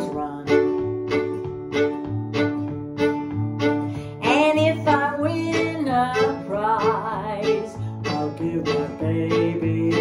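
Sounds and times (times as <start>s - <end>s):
fiddle melody with vibrato: 0.0s - 10.0s
guitar strumming: 0.0s - 10.0s.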